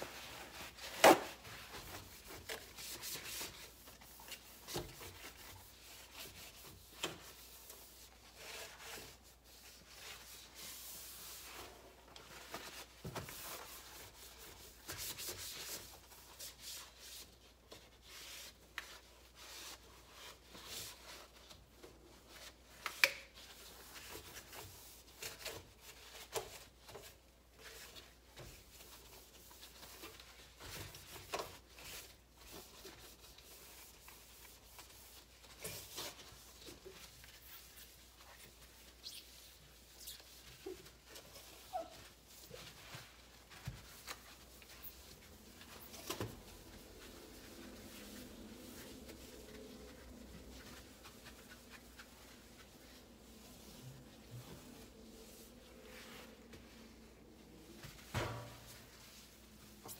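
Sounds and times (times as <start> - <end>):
cloth wiping stovetop: 0.0 - 59.9.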